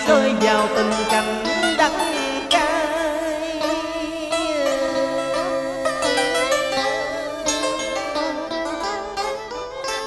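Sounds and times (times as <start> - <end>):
plucked string notes: 0.0 - 10.0
strings holding long notes: 0.0 - 10.0.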